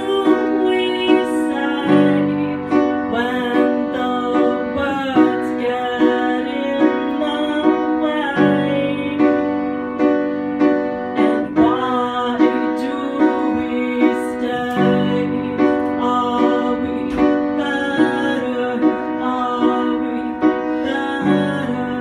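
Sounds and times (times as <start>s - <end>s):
woman singing: 0.0s - 9.5s, 11.2s - 22.0s
piano chords: 0.0s - 22.0s.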